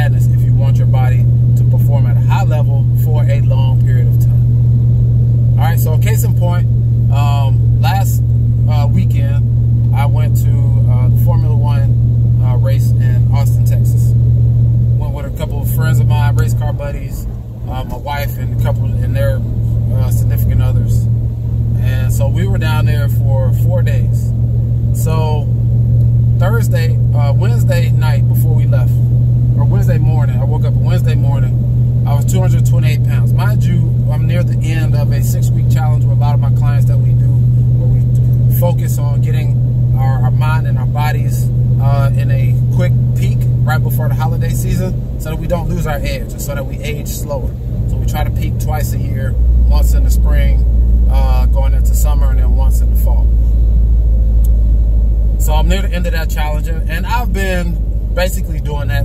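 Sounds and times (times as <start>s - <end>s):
man talking: 0.0s - 4.5s, 5.6s - 14.2s, 15.0s - 21.1s, 21.8s - 24.3s, 25.0s - 25.5s, 26.4s - 29.0s, 29.6s - 53.3s, 55.4s - 59.0s
engine and road noise drone: 0.0s - 59.0s.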